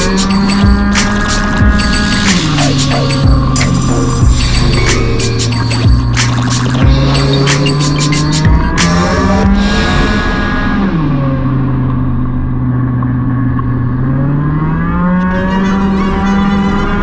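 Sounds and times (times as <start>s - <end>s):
scooter engine: 0.0s - 17.0s.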